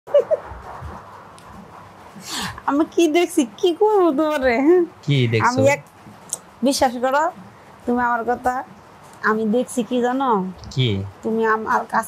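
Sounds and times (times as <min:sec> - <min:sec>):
low steady hiss: 0:00.1 - 0:12.0
sleeping woman vocal sounds: 0:05.1 - 0:05.8.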